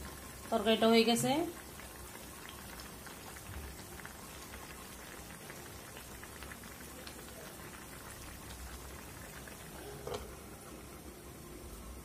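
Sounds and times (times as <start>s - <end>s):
curry bubbling in a pot: 0.0s - 12.0s.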